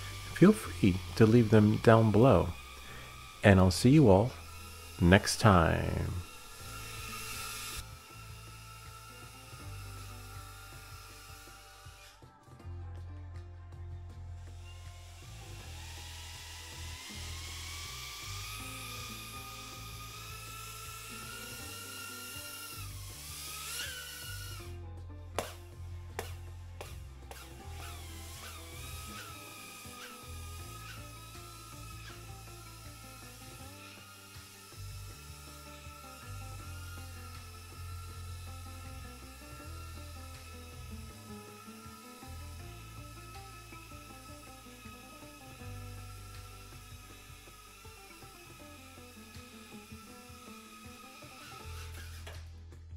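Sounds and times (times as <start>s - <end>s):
drone propellers whining: 0.0s - 12.2s, 14.6s - 24.7s, 26.2s - 52.4s.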